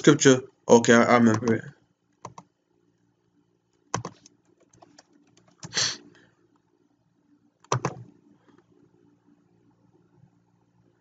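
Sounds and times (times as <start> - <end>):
typing on computer keyboard: 1.2 - 1.6, 2.2 - 2.5, 3.9 - 5.8, 7.6 - 8.1.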